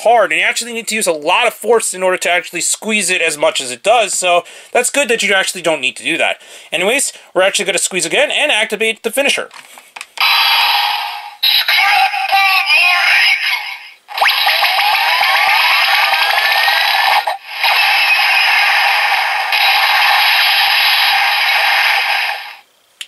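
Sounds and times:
synthesized voice lines: 11.4s - 20.2s
toy sound effects: 11.4s - 22.2s.

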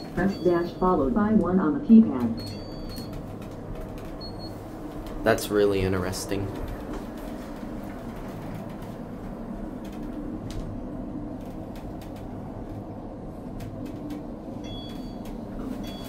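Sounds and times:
elevator ride rumble: 0.0s - 16.0s
faint clicks: 11.4s - 12.8s.

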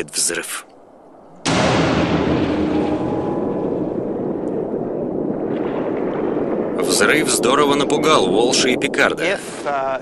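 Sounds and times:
explosion boom and rumble: 1.4s - 10.0s.

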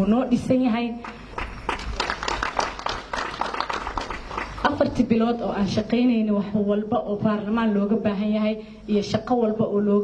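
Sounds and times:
people clapping: 1.0s - 4.8s.

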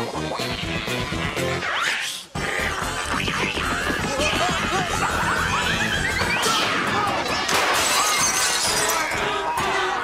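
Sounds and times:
glass jar smashing: 7.5s - 9.0s.

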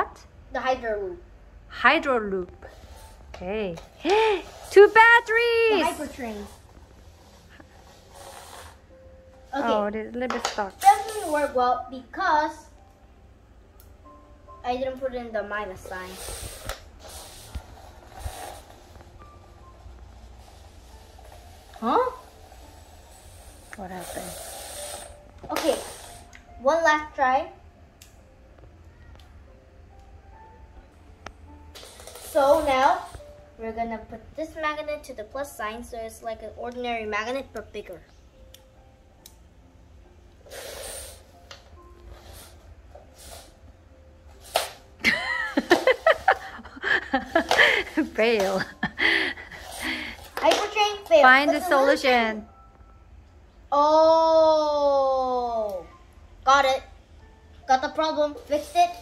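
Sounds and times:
small clicks of magnets snapping: 38.5s - 39.4s
breathy burst of noise: 40.4s - 41.4s.

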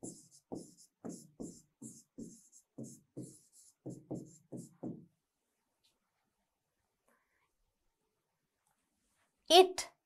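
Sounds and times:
woman saying a word: 9.5s - 9.9s.

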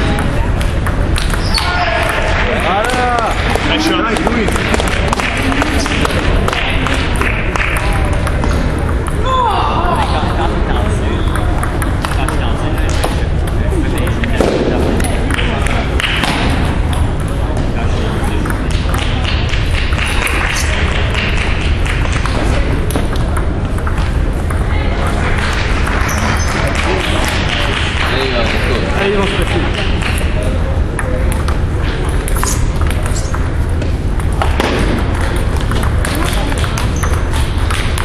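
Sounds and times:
table tennis ball hitting paddles: 0.0s - 9.3s, 11.2s - 38.0s
background chatter: 0.0s - 38.0s
ball bouncing on table: 11.2s - 17.7s, 18.4s - 20.5s, 31.0s - 38.0s.

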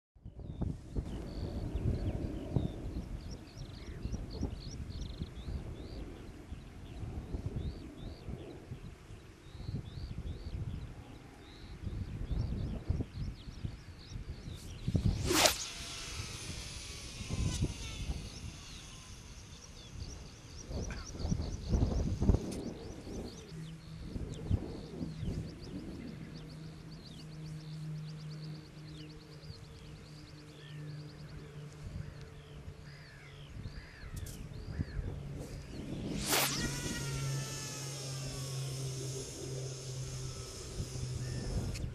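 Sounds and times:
wind buffeting microphone: 0.2s - 30.6s, 31.2s - 41.9s
small birds chirping: 0.3s - 41.9s
fishing line whine off reel: 14.2s - 41.9s
fishing rod whoosh: 14.9s - 19.1s, 35.4s - 41.9s.

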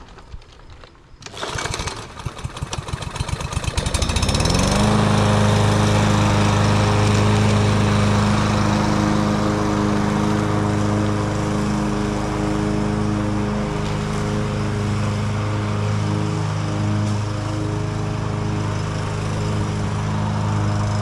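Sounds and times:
lawn mower engine starting and running: 0.0s - 21.0s.

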